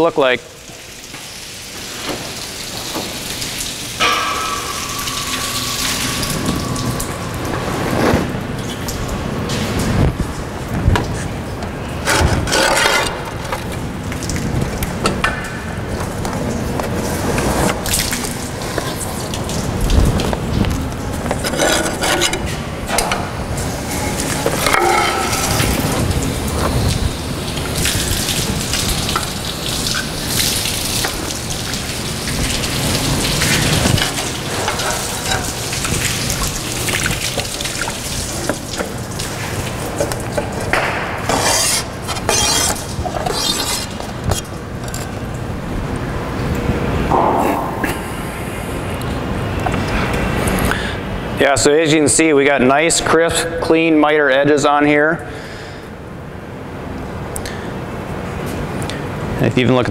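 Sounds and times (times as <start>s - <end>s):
water spraying from hose: 0.0s - 14.6s, 16.9s - 44.6s.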